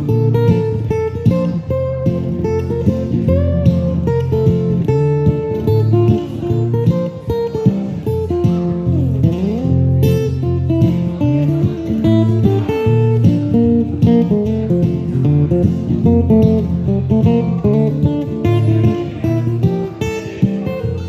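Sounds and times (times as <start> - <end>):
acoustic guitar playing: 0.0 - 21.0.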